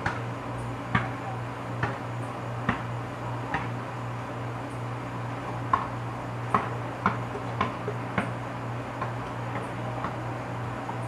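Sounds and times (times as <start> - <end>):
basketball bouncing: 0.9 - 1.2, 1.8 - 2.0, 2.6 - 2.9, 3.5 - 3.8, 5.5 - 8.4, 9.0 - 10.2.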